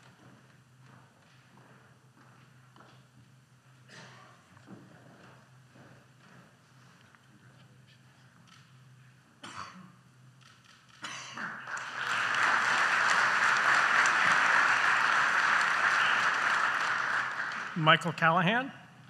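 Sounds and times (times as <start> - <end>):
audience applause: 11.6 - 18.4.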